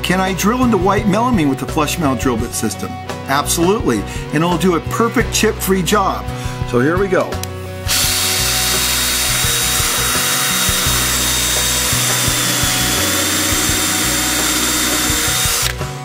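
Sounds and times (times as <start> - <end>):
cordless drill cutting with high whine: 7.9 - 15.9.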